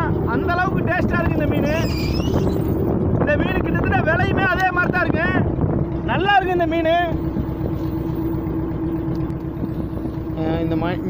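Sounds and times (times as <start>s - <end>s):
boat engine humming: 0.0s - 11.0s
wind: 0.0s - 11.0s.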